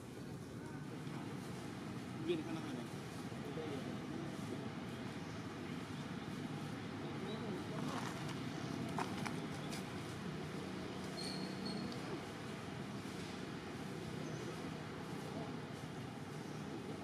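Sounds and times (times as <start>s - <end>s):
faint indistinct voices: 0.0s - 17.0s.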